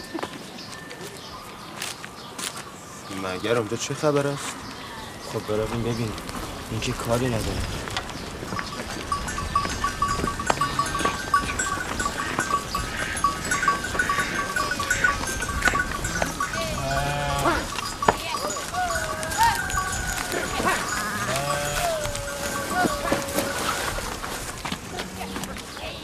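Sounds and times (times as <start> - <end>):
high chirping: 8.2 - 23.2
sheep bleating: 13.9 - 23.7.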